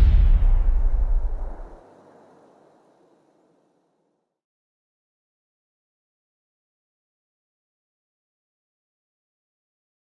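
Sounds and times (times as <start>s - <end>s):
deep boom rumble: 0.0s - 1.8s.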